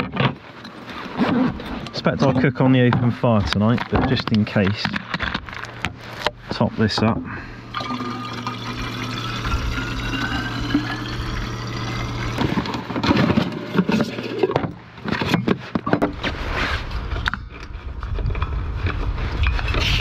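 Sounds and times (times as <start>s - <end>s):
metal camp gear clattering: 0.0s - 6.3s
liquid gurgling into a bottle: 7.6s - 14.6s.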